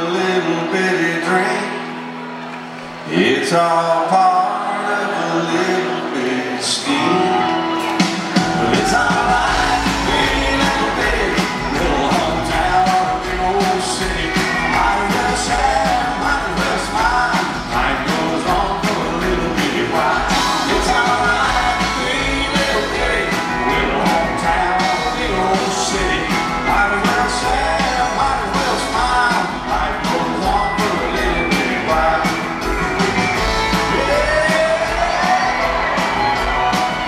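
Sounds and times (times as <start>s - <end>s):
man singing: 0.0s - 1.9s, 3.1s - 37.0s
live country band: 0.0s - 37.0s.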